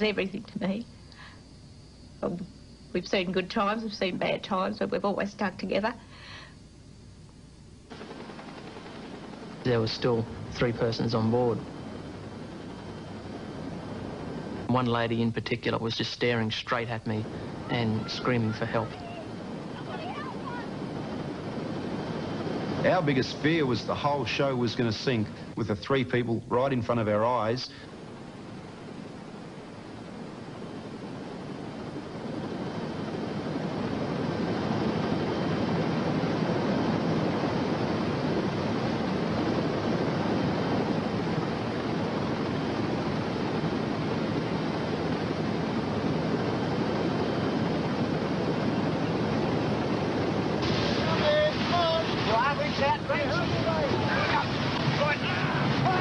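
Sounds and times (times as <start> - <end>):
wind: 0.0 - 56.0
rough sea surging: 17.2 - 24.4, 27.9 - 56.0.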